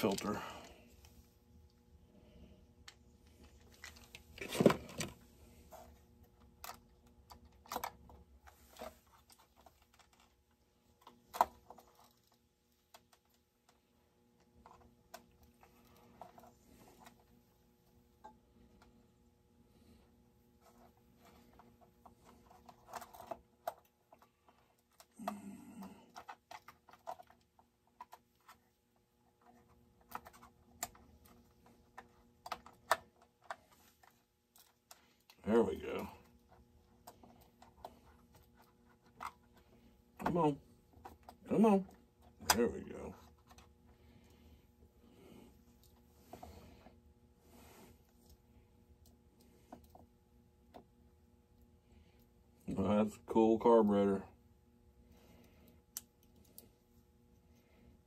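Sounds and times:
small parts clicking and rattling: 0:02.8 - 0:05.2, 0:05.8 - 0:13.8, 0:20.6 - 0:42.6, 0:55.1 - 0:56.8.

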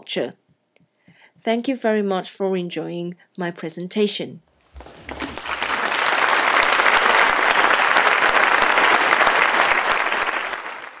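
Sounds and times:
audience applauding: 0:04.7 - 0:11.0.

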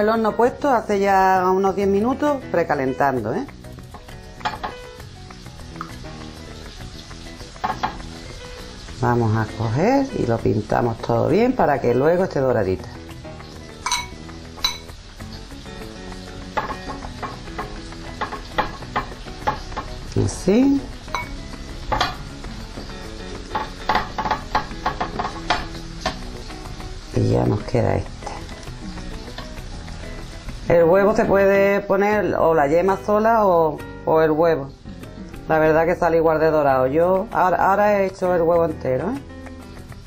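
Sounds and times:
faint background music: 0:00.0 - 0:40.0
vegetables sizzling in oil: 0:00.0 - 0:40.0
brush tapping ceramic bowl: 0:07.6 - 0:08.1, 0:13.8 - 0:14.9, 0:21.1 - 0:22.3, 0:23.5 - 0:25.7.

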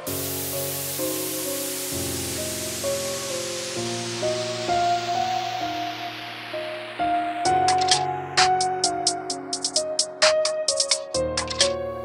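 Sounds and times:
steady hiss: 0:00.0 - 0:11.8
slow instrumental hymn music: 0:00.0 - 0:12.0.

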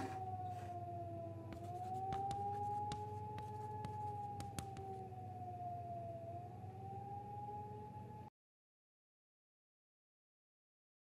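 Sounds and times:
fainter lower tone: 0:00.0 - 0:08.3
high siren-like tone: 0:00.0 - 0:08.3.

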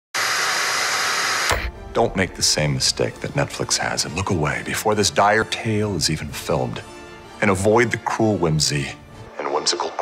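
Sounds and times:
television static hiss: 0:09.3 - 0:10.0.

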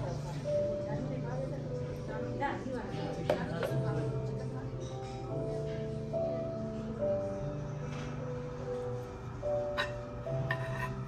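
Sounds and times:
background music with held notes: 0:00.0 - 0:11.0
utensil clinking on dish: 0:09.8 - 0:11.0.

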